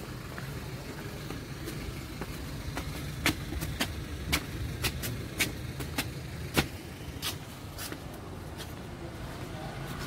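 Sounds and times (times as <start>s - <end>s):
low steady rumble: 0.0s - 8.5s
footsteps on stone stairs: 0.0s - 10.0s.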